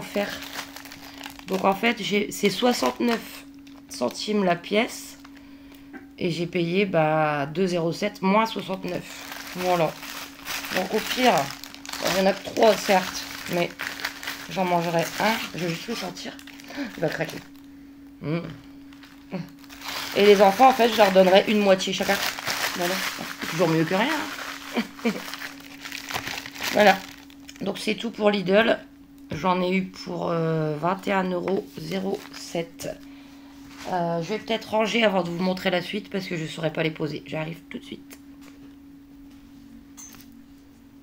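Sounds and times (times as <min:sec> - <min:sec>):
paper bag crinkling: 0:00.0 - 0:04.3, 0:08.8 - 0:17.7, 0:18.9 - 0:27.7, 0:31.8 - 0:32.6
steady low hum: 0:00.0 - 0:41.0
woman humming mmh: 0:18.2 - 0:19.6.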